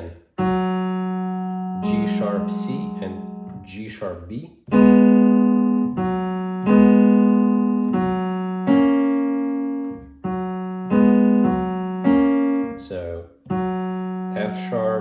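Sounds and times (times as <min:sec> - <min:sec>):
digital piano playing slow chords: 0:00.0 - 0:15.0.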